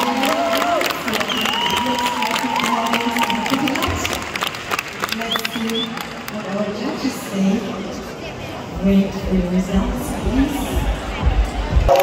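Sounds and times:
audience clapping and cheering: 0.0s - 6.8s, 10.8s - 12.0s.

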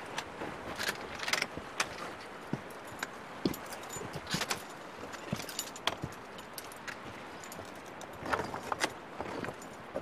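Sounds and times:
carabiners clinking: 0.8s - 9.8s.

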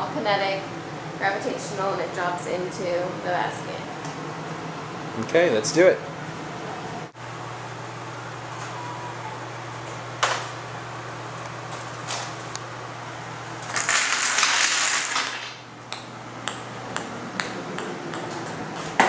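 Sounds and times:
electric fan humming: 0.0s - 19.0s
dominoes clattering on a table: 13.7s - 15.6s
ping-pong ball bouncing on stone: 15.9s - 19.0s.

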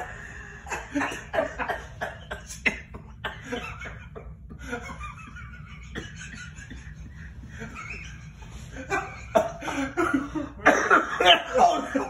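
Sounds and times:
laughter: 0.0s - 12.0s
person coughing: 0.7s - 3.7s, 5.9s - 7.0s, 9.0s - 12.0s.

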